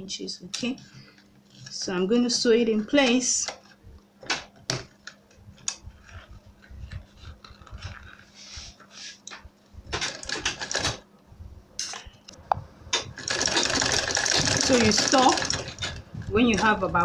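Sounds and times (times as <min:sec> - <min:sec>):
sewing machine clicks: 0:13.0 - 0:16.0.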